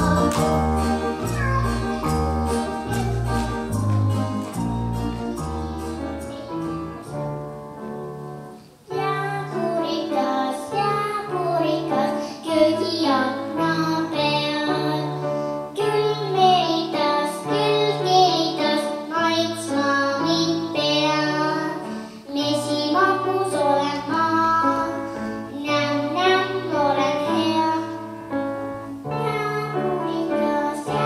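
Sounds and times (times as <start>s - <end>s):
girl singing into microphone: 0.0s - 3.5s, 5.3s - 7.3s, 8.3s - 31.0s
instrumental accompaniment with bass: 0.0s - 8.6s.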